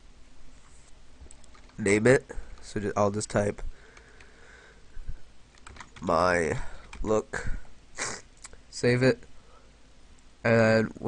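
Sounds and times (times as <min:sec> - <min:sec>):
light keyboard keystrokes: 0:01.2 - 0:01.8, 0:05.5 - 0:06.1.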